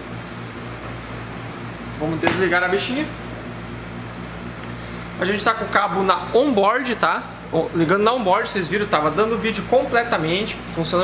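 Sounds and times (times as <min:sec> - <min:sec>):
computer cooling fans whirring: 0:00.0 - 0:11.0.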